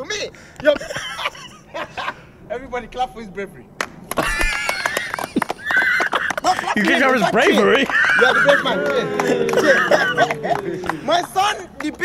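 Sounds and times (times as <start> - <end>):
men laughing in high squeals: 0.8 - 2.3, 4.1 - 11.2
hand claps: 3.8 - 12.0.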